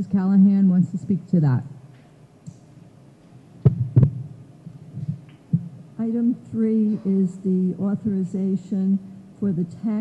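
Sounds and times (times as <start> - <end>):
low steady hum: 0.0 - 10.0
microphone thumps: 3.6 - 5.8.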